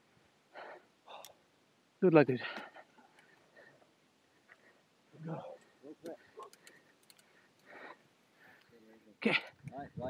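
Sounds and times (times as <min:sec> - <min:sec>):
faint clicks: 0:01.1 - 0:01.4, 0:02.5 - 0:03.5, 0:05.6 - 0:08.8.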